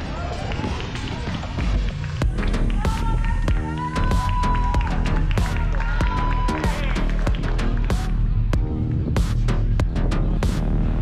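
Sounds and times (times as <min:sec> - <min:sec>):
outdoor noise: 0:00.0 - 0:11.0.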